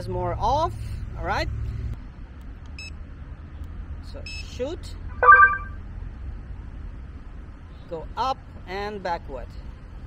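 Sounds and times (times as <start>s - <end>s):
short electronic beep: 5.1s - 5.8s.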